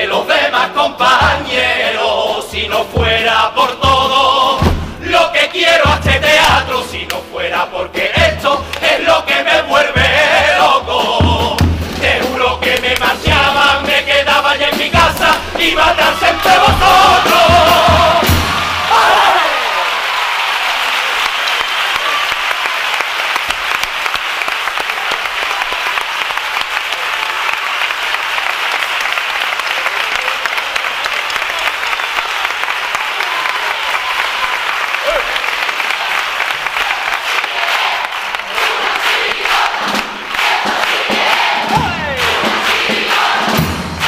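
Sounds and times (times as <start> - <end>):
crowd shouting and cheering: 14.6 - 44.0
audience applauding: 15.1 - 44.0.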